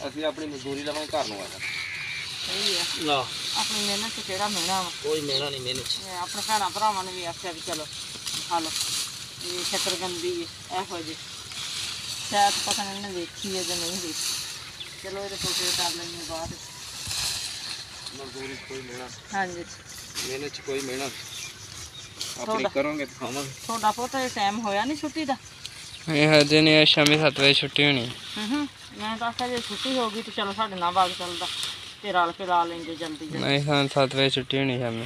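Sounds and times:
people talking: 0.0s - 1.6s, 2.4s - 8.8s, 9.4s - 11.2s, 12.3s - 14.2s, 15.0s - 16.6s, 18.1s - 21.2s, 22.3s - 25.4s, 26.1s - 35.0s
leafy vines rustling: 0.0s - 34.9s.

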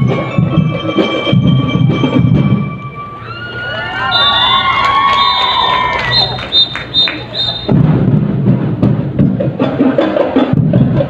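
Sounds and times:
band drumming: 4.2s - 11.0s.

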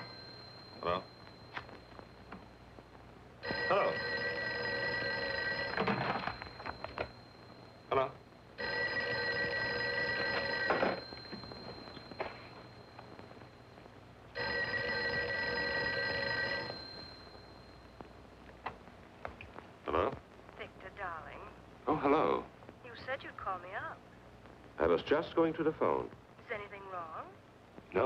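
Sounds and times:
telephone bell ringing: 0.0s - 2.6s, 3.4s - 13.7s, 14.4s - 18.0s.

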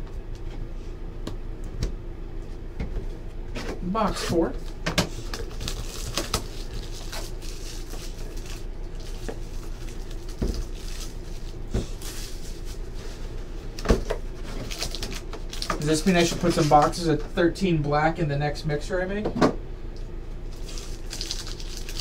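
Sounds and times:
plastic wrap crinkling: 5.2s - 13.8s, 14.4s - 17.0s, 20.5s - 22.0s.

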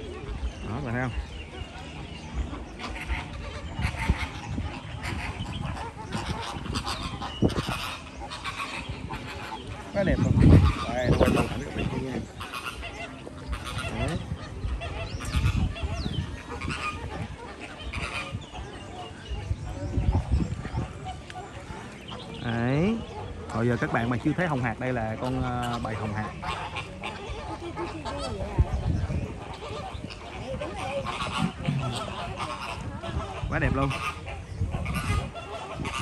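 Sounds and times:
flamingos honking: 0.0s - 36.0s.

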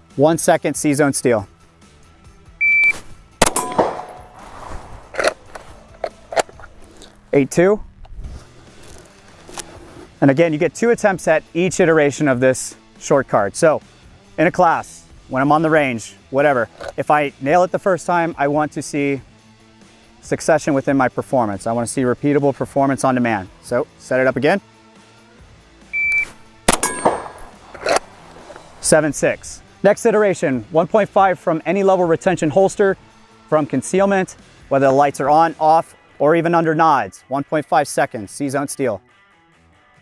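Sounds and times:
shot timer beep: 2.6s - 3.9s, 26.0s - 27.5s
steel target plate clang: 3.4s - 4.5s, 26.7s - 28.7s
pistol shot: 3.4s - 5.4s, 26.7s - 28.2s
clothing handling noise: 4.1s - 7.3s, 8.3s - 10.2s.

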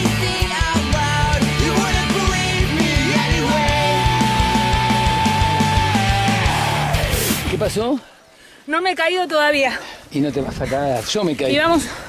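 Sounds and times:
rock music: 0.0s - 7.9s
woman speaking: 8.7s - 9.8s.

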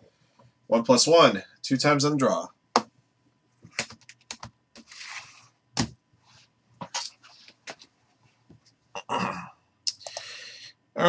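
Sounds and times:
computer keyboard and mouse clicking: 3.7s - 4.5s.

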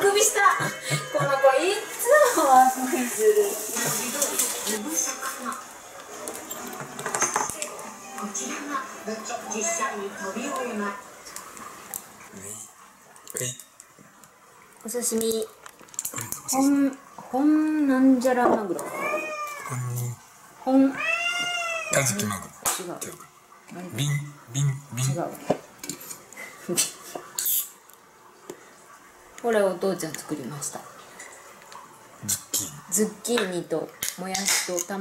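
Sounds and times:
cat meowing: 18.8s - 20.0s, 20.9s - 22.3s.

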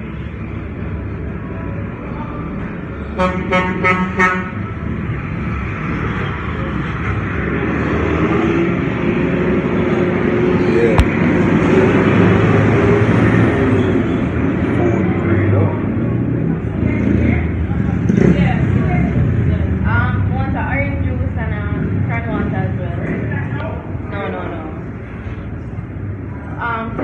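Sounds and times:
vehicle engine hum: 0.0s - 27.0s.

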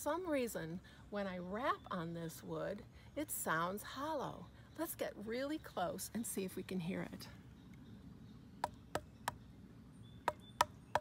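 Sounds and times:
knuckles knocking on tree trunk: 10.2s - 11.0s.

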